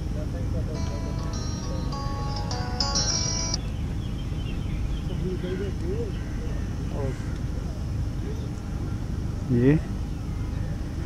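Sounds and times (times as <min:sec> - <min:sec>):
melody of held notes: 0:00.0 - 0:05.7
steady low rumble: 0:00.0 - 0:11.0.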